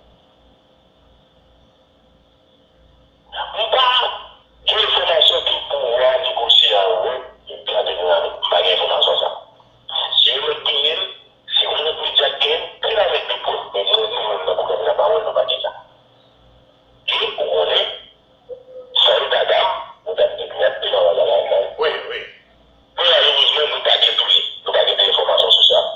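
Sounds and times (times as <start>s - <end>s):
person talking over telephone: 3.3s - 16.0s, 17.1s - 22.4s, 23.0s - 25.9s.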